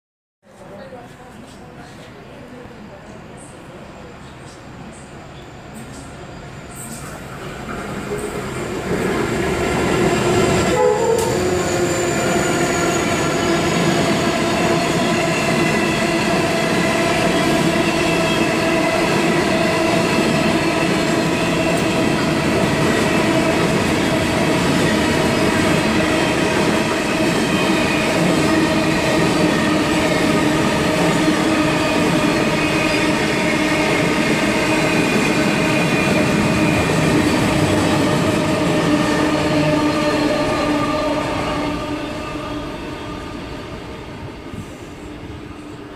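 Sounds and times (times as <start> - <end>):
freight train wheels rumbling on rail: 0.5 - 45.9.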